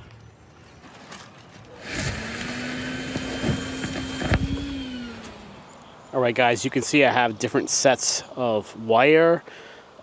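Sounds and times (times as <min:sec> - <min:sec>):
vacuum cleaner running: 0:01.8 - 0:05.5.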